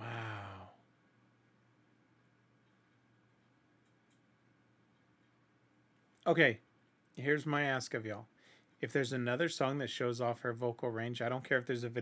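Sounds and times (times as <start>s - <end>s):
man sighing: 0.0s - 0.8s.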